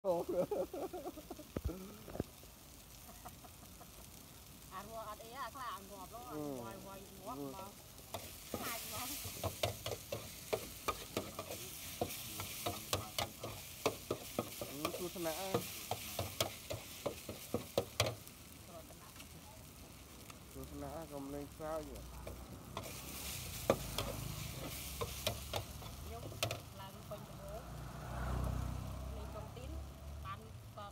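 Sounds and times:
food sizzling on griddle: 0.0s - 30.9s
metal spatula scraping and clacking: 8.1s - 18.3s.

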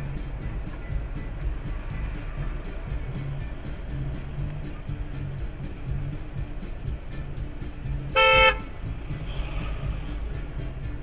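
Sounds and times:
background music with steady beat: 0.0s - 11.0s
car horn blast: 8.1s - 8.8s.

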